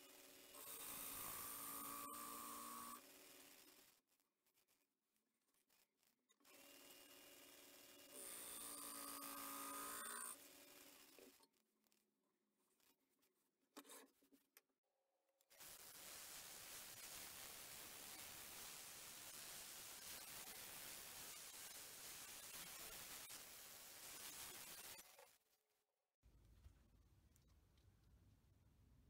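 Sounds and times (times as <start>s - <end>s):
sanding pad hissing on wood: 15.6s - 24.9s.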